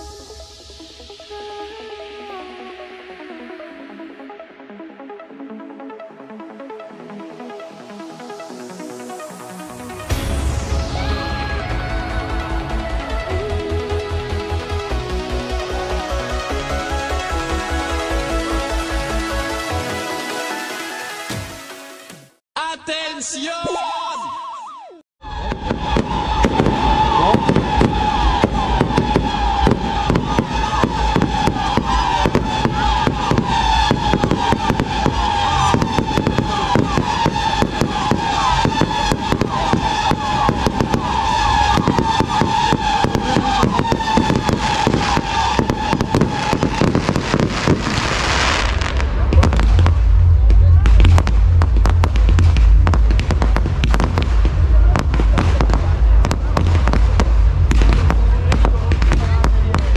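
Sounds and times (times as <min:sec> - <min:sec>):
wavering whistle: 0:24.3 - 0:47.3
fireworks booming: 0:25.2 - 0:59.9
fireworks crackling: 0:25.2 - 0:59.9.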